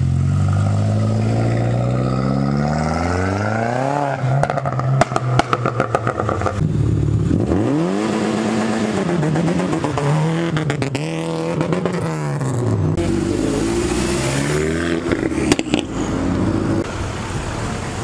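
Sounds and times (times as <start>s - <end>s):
car engines revving: 0.0s - 18.0s
sharp exhaust pops: 4.4s - 6.7s.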